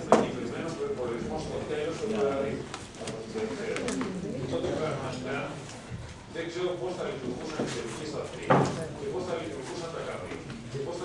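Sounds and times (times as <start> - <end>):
men's voices murmuring: 0.0 - 11.0.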